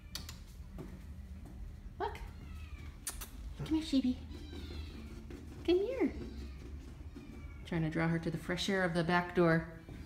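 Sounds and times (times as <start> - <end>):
cat meowing: 2.3 - 3.4, 4.3 - 5.2.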